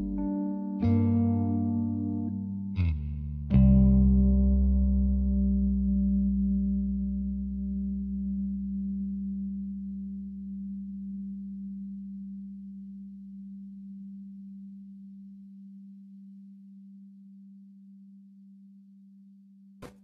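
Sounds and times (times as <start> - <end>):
deep rumble: 0.0 - 0.3
low steady tone: 0.0 - 19.6.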